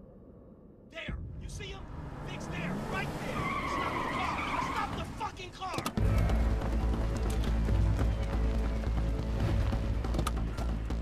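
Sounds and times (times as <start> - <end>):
car tyres squealing: 2.1 - 6.7
deep low film score drone: 6.0 - 11.0.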